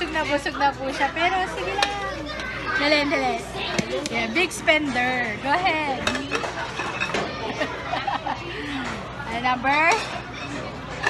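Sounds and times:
people talking and laughing: 0.0 - 11.0
ceramic plates clinking: 4.8 - 7.6.

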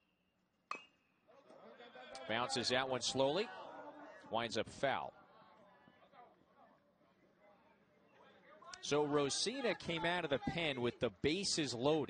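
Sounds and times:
metal bat hitting baseball: 0.7 - 0.9.

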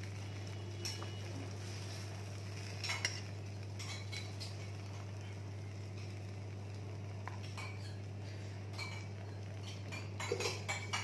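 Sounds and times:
metal spoon scraping a pan: 0.8 - 4.8.

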